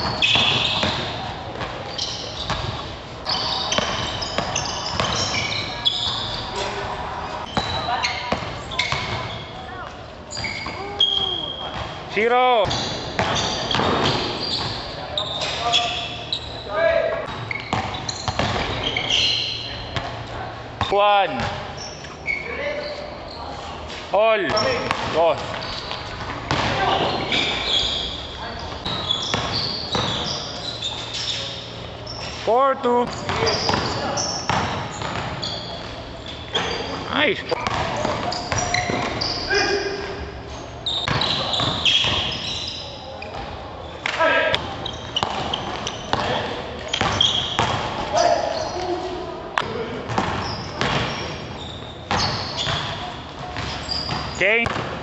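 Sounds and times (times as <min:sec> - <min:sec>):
ball hitting rim and backboard: 0:00.0 - 0:01.8, 0:02.4 - 0:05.5, 0:07.5 - 0:09.4, 0:12.6 - 0:14.8, 0:17.3 - 0:18.9, 0:24.5 - 0:25.6, 0:26.2 - 0:27.6, 0:28.8 - 0:30.3, 0:33.0 - 0:35.4, 0:37.5 - 0:39.3, 0:41.0 - 0:42.3, 0:44.6 - 0:48.1, 0:50.1 - 0:51.2, 0:52.1 - 0:55.0
basketball bouncing on hard floor: 0:00.0 - 0:01.8, 0:12.7 - 0:14.8, 0:17.3 - 0:18.8, 0:24.5 - 0:25.6, 0:26.2 - 0:27.6, 0:28.8 - 0:30.2, 0:33.1 - 0:35.4, 0:37.6 - 0:39.2, 0:45.2 - 0:48.0, 0:50.1 - 0:51.1, 0:53.6 - 0:55.0
players calling out: 0:00.0 - 0:54.8
sneakers squeaking on court: 0:00.0 - 0:55.0.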